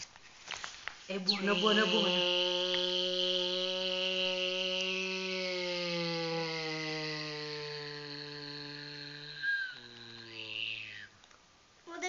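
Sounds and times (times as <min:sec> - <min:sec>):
person humming airplane drone: 0:01.4 - 0:11.2.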